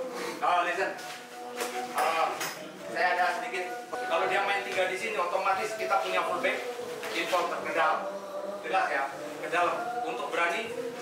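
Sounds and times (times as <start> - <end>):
people talking indistinctly: 0.1 - 11.0.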